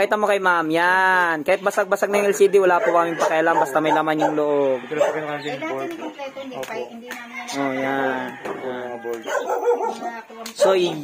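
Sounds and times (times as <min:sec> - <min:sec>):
man's voice: 0:00.0 - 0:06.0, 0:10.6 - 0:11.0
dog barking: 0:02.2 - 0:06.2, 0:09.2 - 0:11.0.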